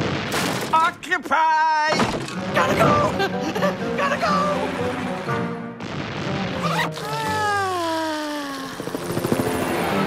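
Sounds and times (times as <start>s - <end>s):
cartoon helicopter rotor chopping: 6.8s - 10.0s
falling voiced sigh: 7.1s - 8.8s.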